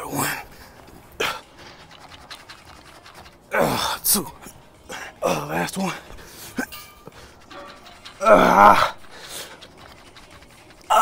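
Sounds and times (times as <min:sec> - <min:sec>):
man breathing hard: 0:06.0 - 0:07.5, 0:08.9 - 0:09.7
man grunting with effort: 0:08.2 - 0:09.0.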